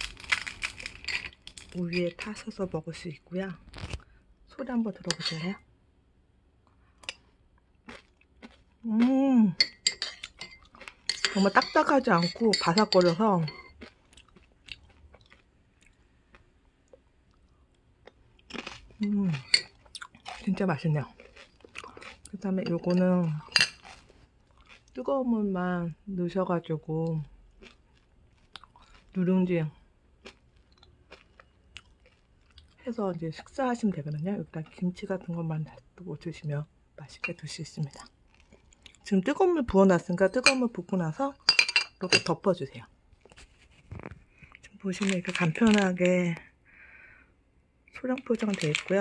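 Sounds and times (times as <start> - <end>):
person chewing crunchy rice crisps: 0.0 - 1.8, 7.0 - 9.3, 10.2 - 11.5, 13.5 - 25.0, 27.4 - 29.2, 30.1 - 32.8, 37.9 - 39.1, 48.2 - 49.0
person speaking: 1.7 - 3.6, 4.6 - 5.6, 11.2 - 13.5, 22.3 - 23.6, 44.7 - 46.5, 48.0 - 49.0.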